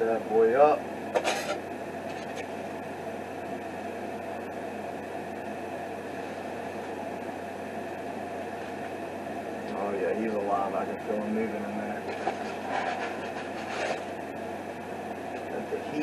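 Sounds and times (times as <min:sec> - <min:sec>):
low hum: 0:00.0 - 0:16.0
steady hissing noise: 0:00.0 - 0:16.0.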